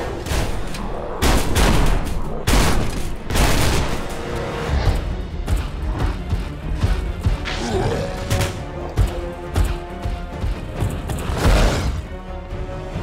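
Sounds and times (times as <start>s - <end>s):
tense soundtrack music: 0.0s - 13.0s.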